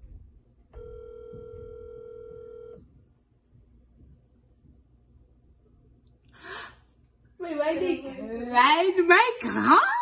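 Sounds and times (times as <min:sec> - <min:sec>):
phone ringback tone: 0:00.8 - 0:02.8.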